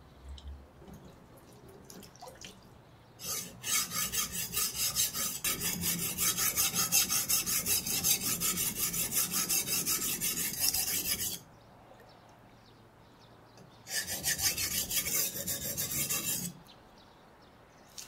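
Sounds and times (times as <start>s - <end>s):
faint water drips: 0.0s - 3.0s.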